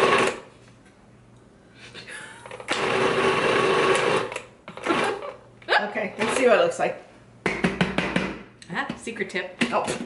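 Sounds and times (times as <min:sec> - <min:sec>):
food processor motor running: 0:00.0 - 0:00.5, 0:02.7 - 0:05.4.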